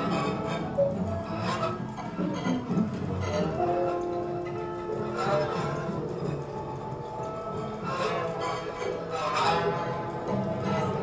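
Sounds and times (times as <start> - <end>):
cello scraping: 0.0 - 11.0
guitar: 0.0 - 11.0.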